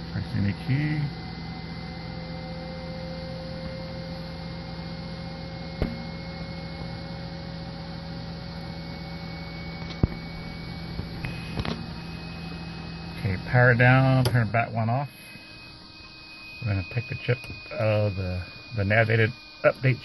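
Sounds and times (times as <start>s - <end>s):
electrical hum with high whine: 0.0s - 20.0s.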